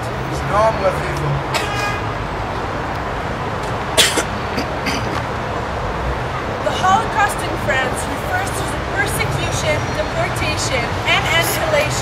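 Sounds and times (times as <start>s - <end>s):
road traffic noise: 0.0s - 12.0s
car horn toot: 1.5s - 2.1s.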